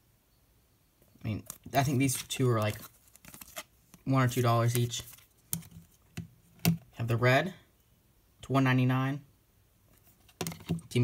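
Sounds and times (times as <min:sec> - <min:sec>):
plastic card cases clicking: 0:01.4 - 0:06.8.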